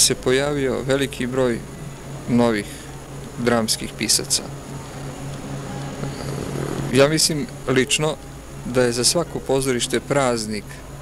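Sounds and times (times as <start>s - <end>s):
man's voice: 0.0s - 1.6s, 6.9s - 10.8s
low steady hum: 0.0s - 11.0s
vehicle rumble: 0.0s - 11.0s.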